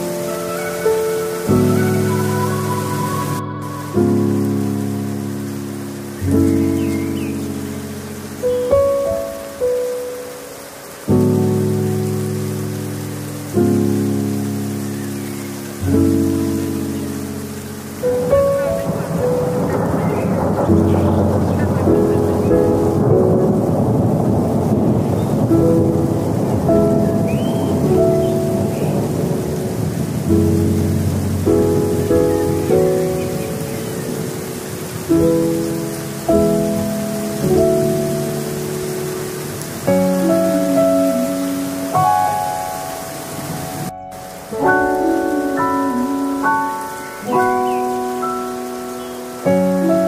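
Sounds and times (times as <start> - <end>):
thunder rumble: 0.0 - 14.8, 15.9 - 50.0
rain: 0.0 - 50.0
soft piano music: 0.0 - 50.0.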